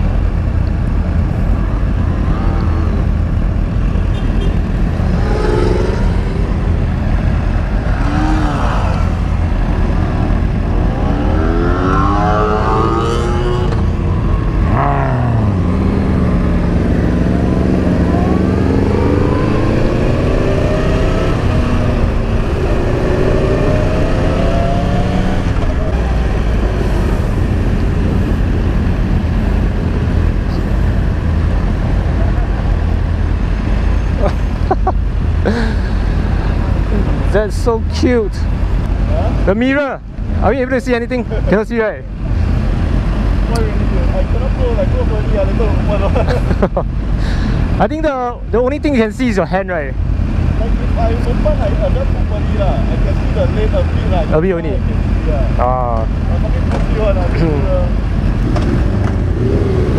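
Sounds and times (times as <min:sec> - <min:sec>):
motorcycle engine accelerating: 0:04.4 - 0:30.5, 0:55.6 - 0:59.9.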